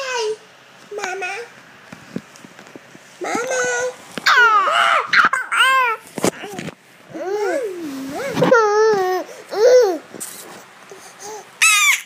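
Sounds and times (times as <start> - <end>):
toddler squealing: 11.6 - 12.0.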